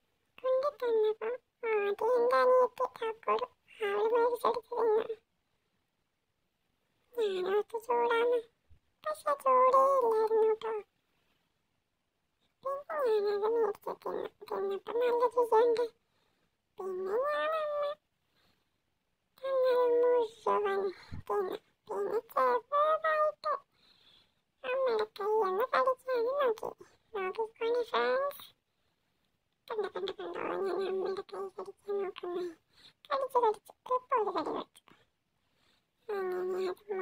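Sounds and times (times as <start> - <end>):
child's high-pitched vocal sound: 0.4 - 5.2, 7.1 - 10.9, 12.6 - 16.0, 16.8 - 18.0, 19.4 - 23.7, 24.6 - 28.6, 29.7 - 35.1, 36.0 - 37.0.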